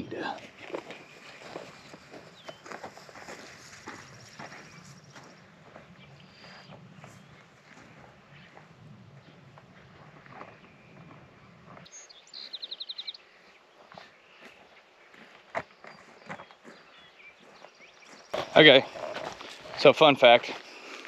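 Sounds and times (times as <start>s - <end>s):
footsteps on loose soil: 0.0s - 21.0s.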